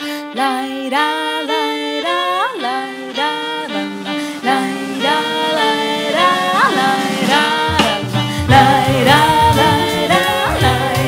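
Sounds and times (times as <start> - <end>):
piano: 0.0 - 11.0
violin melody with slides: 0.0 - 11.0
double bass: 6.1 - 11.0.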